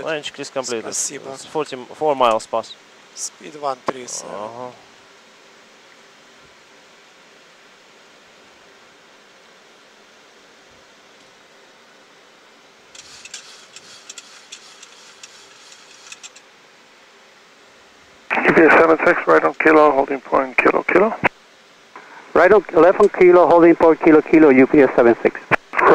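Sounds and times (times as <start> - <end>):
airflow and air-conditioning hiss: 0.0 - 25.9
soft rustles and small clicks: 13.0 - 16.4.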